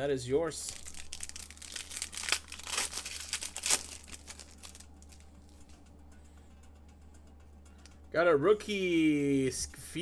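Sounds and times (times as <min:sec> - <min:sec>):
foil wrapper crinkling: 0:00.6 - 0:05.2.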